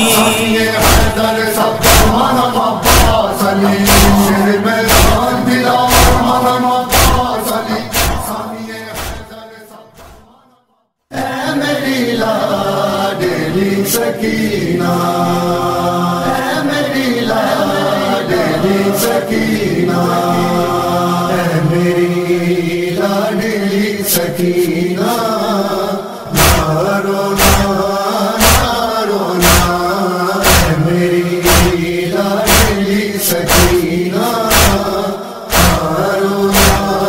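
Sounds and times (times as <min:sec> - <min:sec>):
man chanting a lament: 0:00.0 - 0:10.2, 0:11.2 - 0:37.0
heavy thumps: 0:02.8 - 0:08.4.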